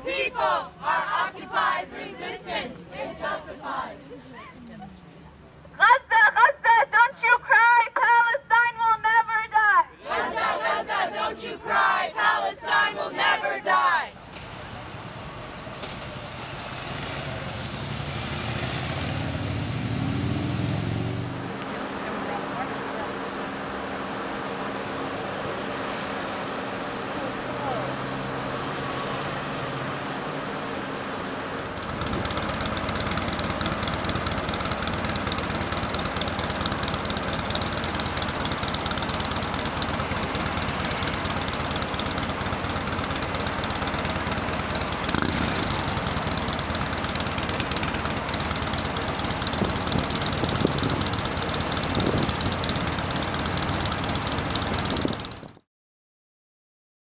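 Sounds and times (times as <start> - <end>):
vehicle engines approaching: 0.0 - 5.7, 10.0 - 55.6.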